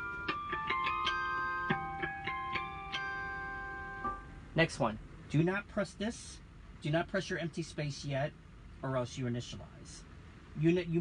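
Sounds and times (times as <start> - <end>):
keyboard guitar harmonic notes: 0.0 - 4.4.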